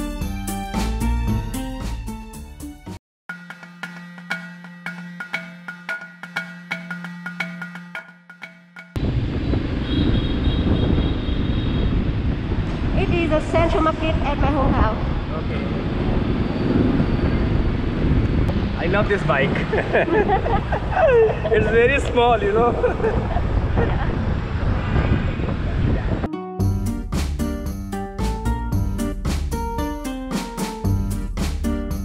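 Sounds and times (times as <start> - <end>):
street traffic noise: 9.0 - 26.3
wind on microphone: 9.0 - 26.3
scooter engine and road noise: 9.0 - 26.8.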